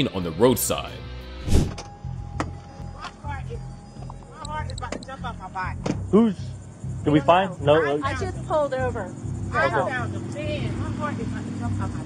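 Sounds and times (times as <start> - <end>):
quiet background music: 0.0 - 12.0
car door thump: 5.8 - 6.1.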